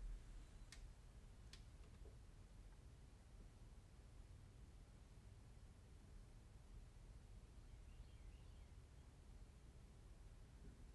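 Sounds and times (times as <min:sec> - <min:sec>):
faint high chirp: 0:07.6 - 0:09.1.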